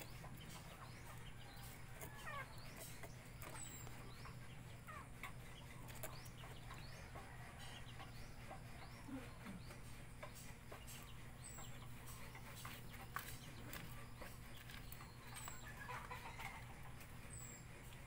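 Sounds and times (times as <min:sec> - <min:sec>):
faint birds chirping: 0:00.0 - 0:18.0
steady low hum: 0:00.0 - 0:18.0.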